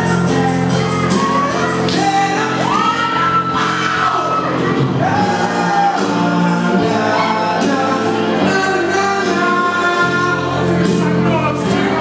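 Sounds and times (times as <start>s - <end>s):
backing music: 0.0s - 12.0s
man singing into a microphone: 0.0s - 12.0s.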